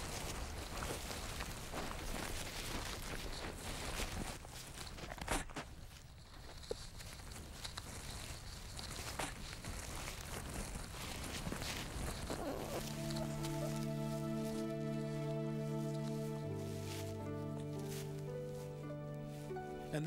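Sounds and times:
small crackles: 0:00.0 - 0:19.9
dry leaves and sticks rustling: 0:00.0 - 0:20.0.

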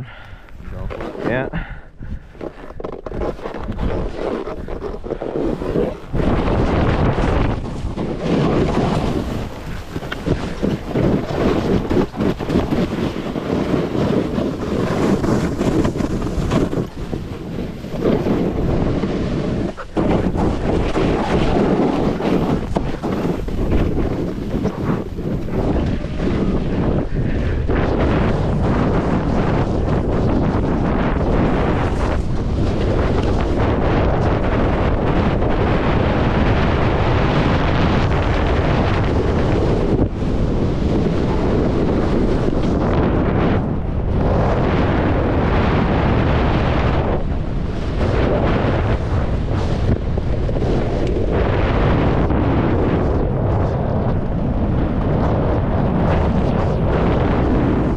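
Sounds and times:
wind rushing over microphone: 0:00.0 - 0:57.9
snowboard scraping through snow: 0:00.6 - 0:57.9.

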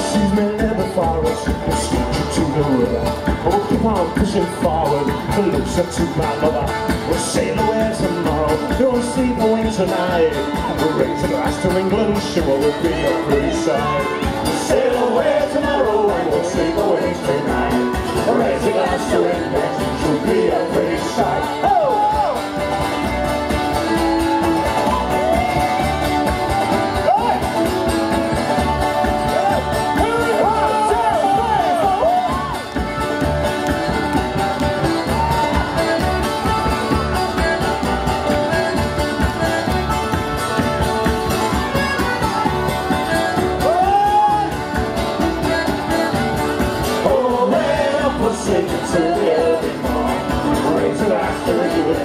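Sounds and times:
person singing: 0:00.0 - 0:22.5, 0:47.0 - 0:52.0
voices over music: 0:00.0 - 0:22.6, 0:28.8 - 0:33.7, 0:46.9 - 0:52.0
folk band playing: 0:00.0 - 0:52.0
mandolin: 0:00.0 - 0:52.0
plucked string instrument: 0:00.0 - 0:52.0
strummed acoustic guitar: 0:00.0 - 0:52.0
button accordion: 0:32.4 - 0:43.6, 0:44.5 - 0:47.0.

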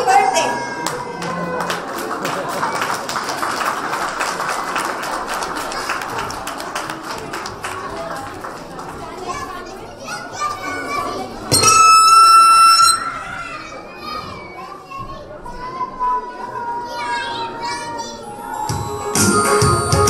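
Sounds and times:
children chattering: 0:00.0 - 0:19.6
high-pitched squeal: 0:11.5 - 0:13.5.

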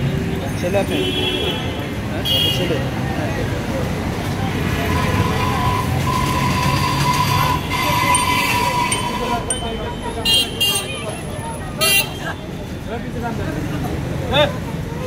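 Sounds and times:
crowd voices: 0:00.0 - 0:15.0
street traffic noise: 0:00.0 - 0:15.0.

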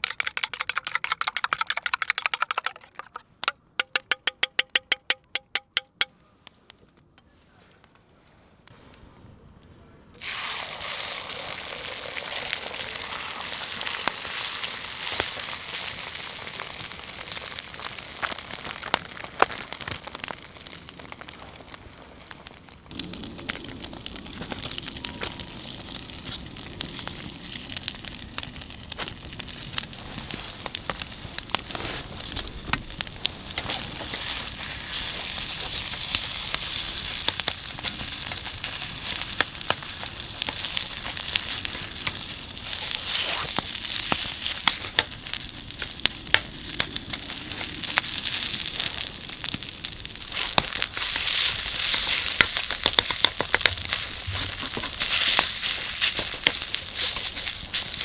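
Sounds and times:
wood fire crackling: 0:00.0 - 0:58.0
egg and rice sizzling in pan: 0:10.2 - 0:58.0.

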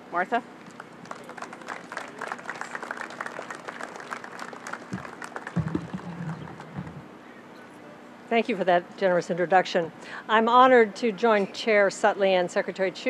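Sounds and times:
audience applauding: 0:00.8 - 0:07.0
low thumps: 0:04.9 - 0:07.1.

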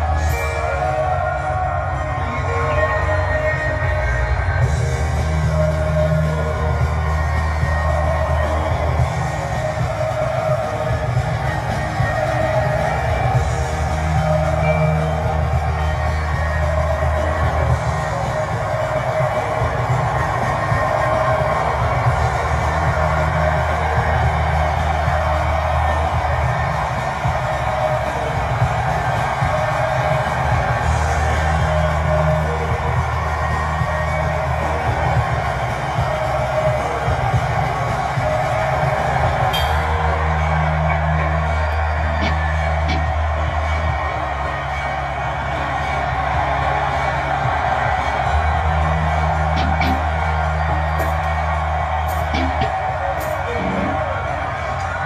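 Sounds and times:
band music with held bass: 0:00.0 - 0:55.0.

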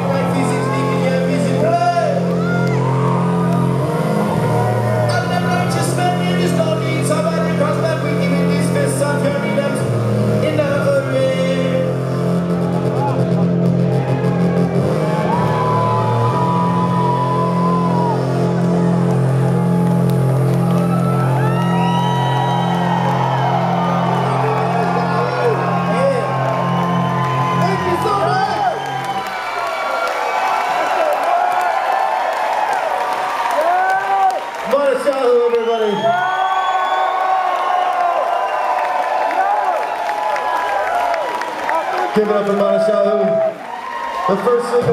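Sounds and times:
pulsing bass line: 0:00.0 - 0:29.5
electronic dance music: 0:00.0 - 0:30.1, 0:32.8 - 0:36.4
crowd whooping and cheering: 0:00.0 - 0:44.9.

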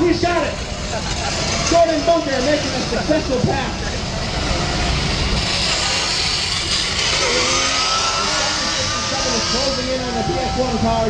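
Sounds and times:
electric toy car driving on asphalt: 0:00.0 - 0:11.0.

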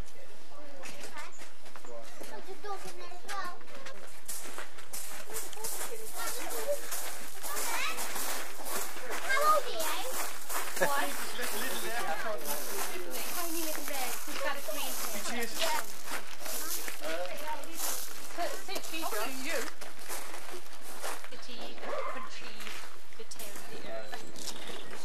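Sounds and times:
chatter of adults and children: 0:00.0 - 0:25.0.

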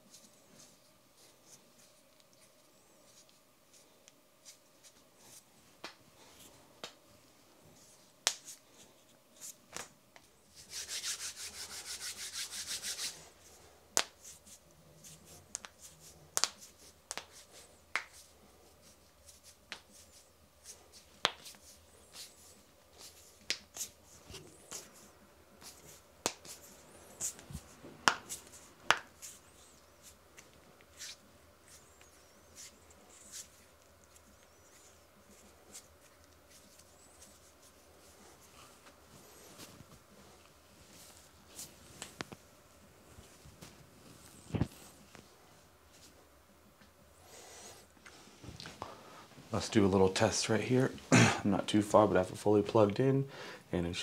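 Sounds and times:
knuckles cracking: 0:15.5 - 0:17.3.

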